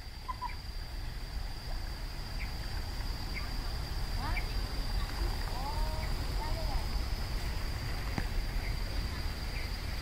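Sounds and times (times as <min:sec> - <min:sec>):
birds chirping: 0:02.3 - 0:07.6.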